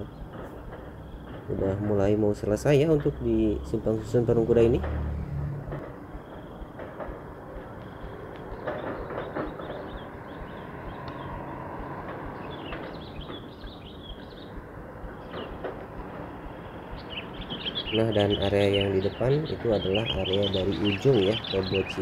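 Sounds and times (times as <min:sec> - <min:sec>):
distant traffic rumble: 0:00.0 - 0:22.0
faint bird chirps: 0:06.0 - 0:22.0.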